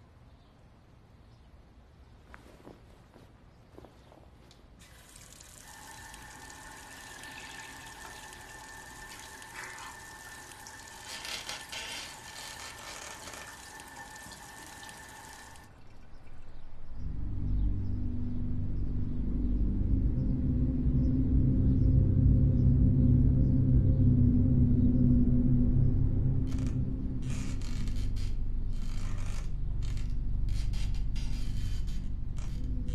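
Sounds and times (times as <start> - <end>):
tap running into washbasin: 4.8 - 15.7
water splashing: 4.8 - 15.7
low deep music: 16.1 - 32.9.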